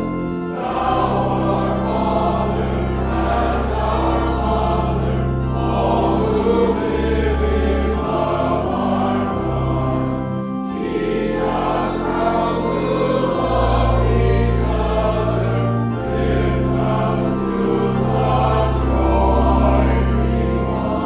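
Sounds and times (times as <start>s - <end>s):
choir singing a hymn: 0.0s - 21.0s
organ bass notes: 0.0s - 21.0s.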